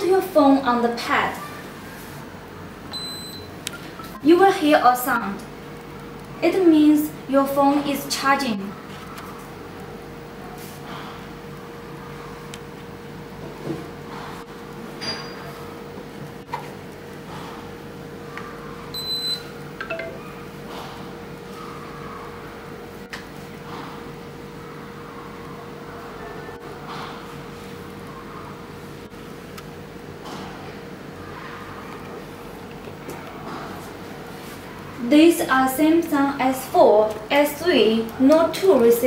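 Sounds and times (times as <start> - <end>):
wireless charger beeps: 2.9 - 3.5, 19.0 - 20.2.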